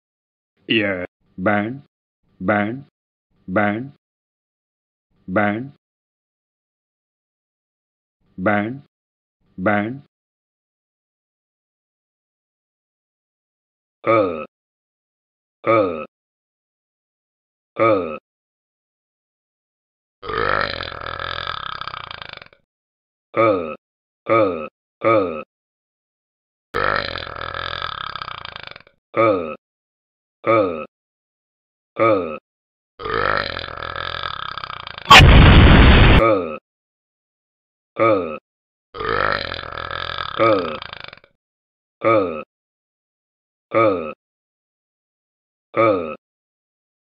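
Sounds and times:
long burp: 0:14.0 - 0:14.5, 0:15.6 - 0:16.1, 0:17.8 - 0:18.2, 0:20.2 - 0:22.6, 0:23.4 - 0:25.5, 0:26.8 - 0:29.6, 0:30.4 - 0:30.9, 0:32.0 - 0:32.4, 0:33.0 - 0:35.5, 0:36.1 - 0:36.6, 0:38.0 - 0:38.4, 0:39.0 - 0:41.4, 0:42.0 - 0:42.5, 0:43.7 - 0:44.2, 0:45.8 - 0:46.2.

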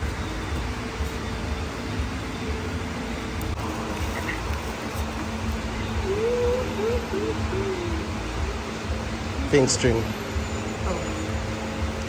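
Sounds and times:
low indoor room rumble: 0:00.0 - 0:12.0.

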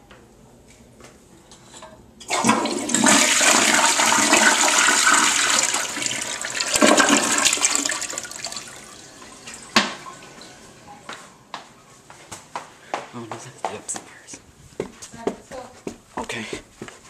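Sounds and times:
toilet flushing: 0:02.2 - 0:10.9.

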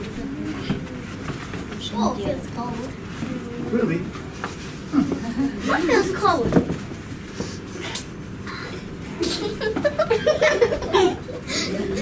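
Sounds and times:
people talking quietly: 0:00.0 - 0:06.6, 0:07.8 - 0:12.0.

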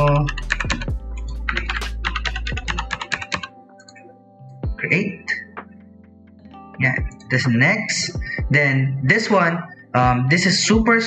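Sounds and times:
keyboard typing: 0:00.0 - 0:04.1.

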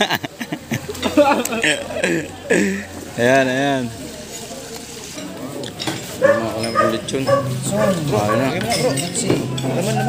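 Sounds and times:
murmur of voices: 0:00.0 - 0:10.0
cutlery scraping and clinking on plates: 0:04.2 - 0:10.0.

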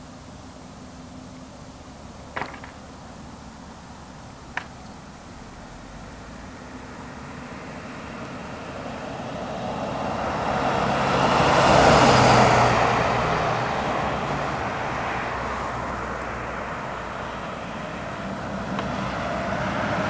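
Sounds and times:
low engine hum: 0:00.0 - 0:20.0
vehicles driving past: 0:00.0 - 0:20.0.

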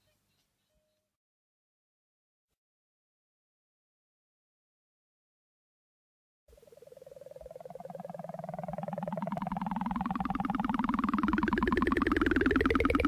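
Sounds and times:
pulsing synthesizer chord: 0:06.5 - 0:13.0.

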